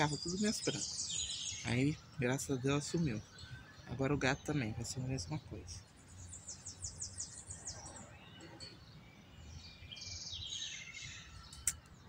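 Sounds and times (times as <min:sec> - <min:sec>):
small birds singing: 0:00.0 - 0:12.0
sharp click: 0:11.5 - 0:12.0.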